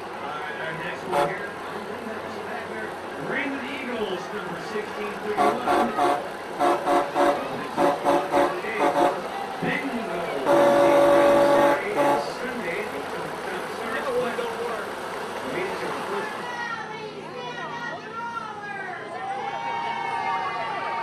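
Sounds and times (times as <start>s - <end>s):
truck air horn honking: 1.0s - 1.6s, 5.3s - 9.4s, 10.3s - 12.7s.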